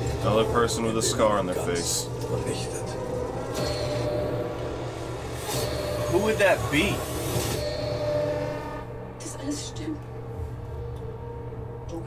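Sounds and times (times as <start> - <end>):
horn-like drone: 2.6 - 12.0.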